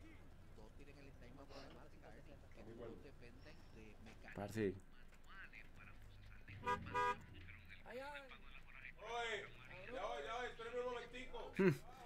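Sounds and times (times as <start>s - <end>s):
car horn honks: 6.6s - 7.3s.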